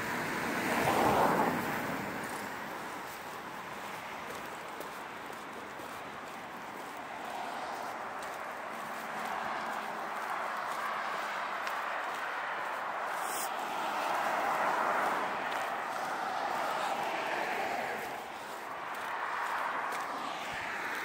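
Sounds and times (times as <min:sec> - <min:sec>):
road traffic passing: 0:00.0 - 0:21.0.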